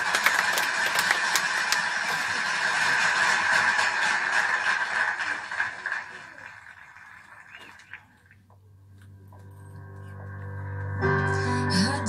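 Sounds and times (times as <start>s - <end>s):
sharp handclaps: 0.0s - 8.1s
applause and cheering: 0.0s - 8.4s.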